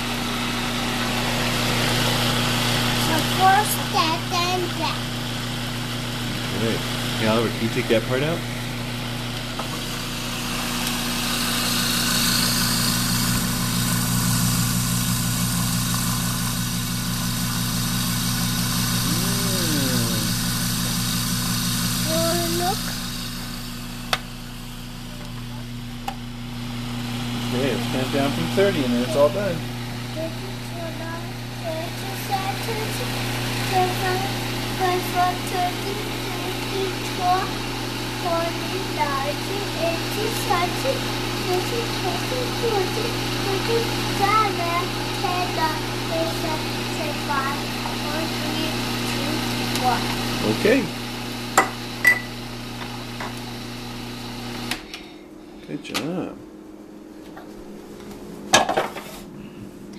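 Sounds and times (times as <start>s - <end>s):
food processor motor humming: 0.0s - 56.2s.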